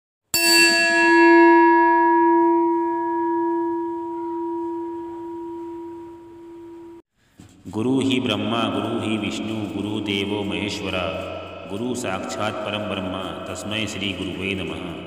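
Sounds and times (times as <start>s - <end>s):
bell ringing: 0.4s - 7.0s.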